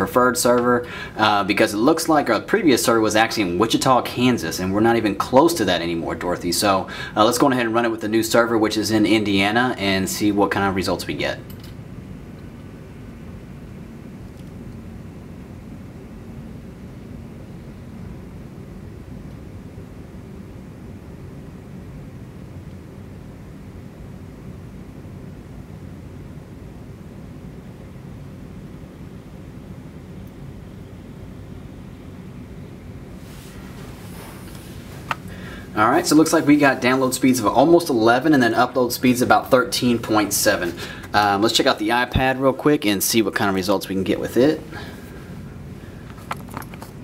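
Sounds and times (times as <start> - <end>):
faint hum: 0.0 - 47.0.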